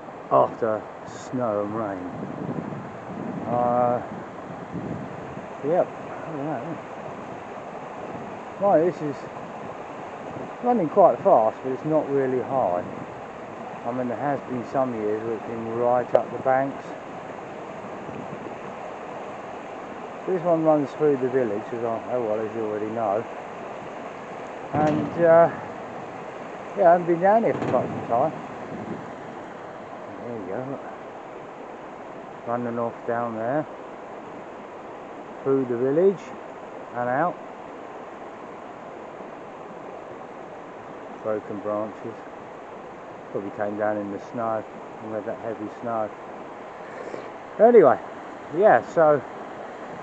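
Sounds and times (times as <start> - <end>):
river rushing over rocks: 46.0 - 50.0.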